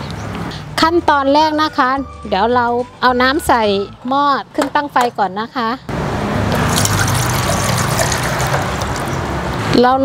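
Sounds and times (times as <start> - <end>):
water pouring into metal pot: 6.5 - 9.2.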